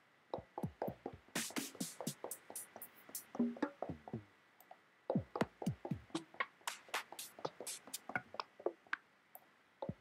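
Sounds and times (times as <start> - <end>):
electronic drum samples: 0.4 - 4.3, 5.1 - 8.9.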